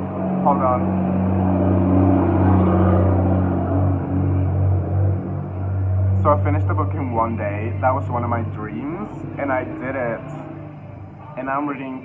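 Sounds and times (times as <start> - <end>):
vehicle engine passing by: 0.0 - 12.0.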